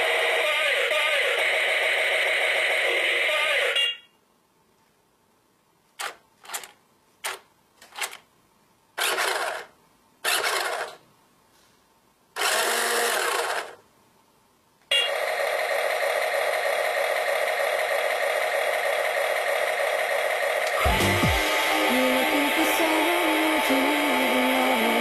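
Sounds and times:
toy electric motor whirring: 9.0s - 11.0s, 12.4s - 13.8s
loud continuous music: 20.8s - 25.0s.

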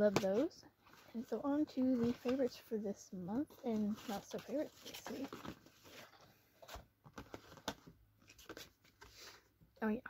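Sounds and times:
rustling of packaging: 3.4s - 9.5s.

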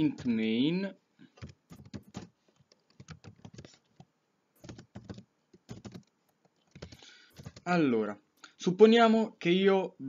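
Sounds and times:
computer keyboard typing: 1.4s - 7.8s.

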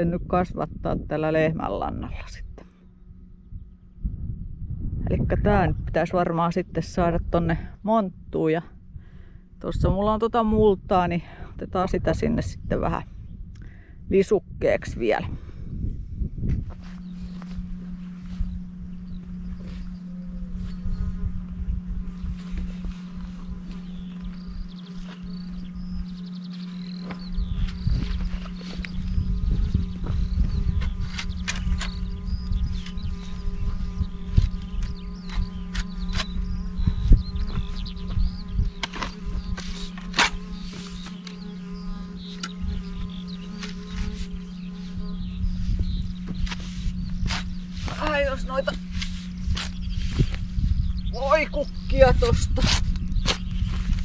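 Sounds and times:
steady low hum: 0.0s - 54.0s
shovel chopping and scraping soil: 38.8s - 41.5s, 46.3s - 50.4s, 52.6s - 54.0s.

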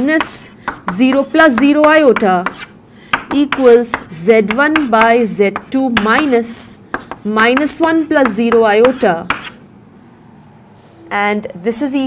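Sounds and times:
person speaking: 0.0s - 2.7s, 3.3s - 9.5s
chalk tapping on chalkboard: 0.0s - 9.6s.

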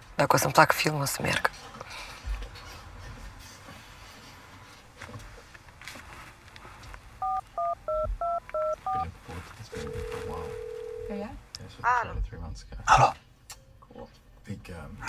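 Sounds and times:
phone keypad dialing beeps: 7.2s - 9.0s
phone ring tone: 7.2s - 9.0s, 9.7s - 11.3s.

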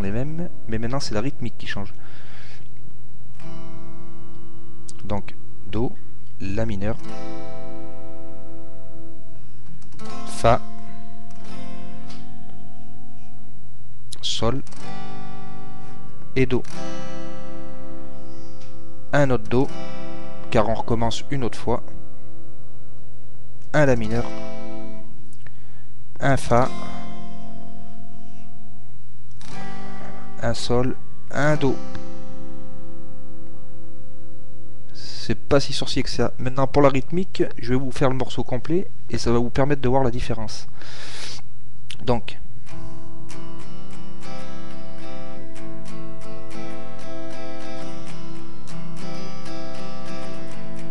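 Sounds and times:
acoustic guitar chord strummed: 0.0s - 2.6s, 3.3s - 38.8s, 40.4s - 41.5s, 42.6s - 50.9s.

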